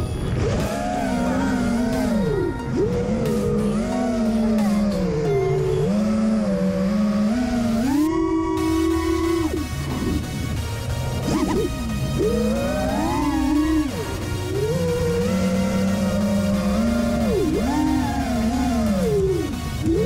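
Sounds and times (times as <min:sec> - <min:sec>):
quadcopter motors whining: 0:00.4 - 0:10.4, 0:11.2 - 0:20.0.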